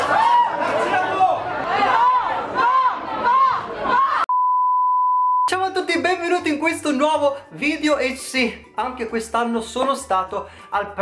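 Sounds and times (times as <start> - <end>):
crowd shouting: 0.0 - 4.3
censor bleep: 4.3 - 5.5.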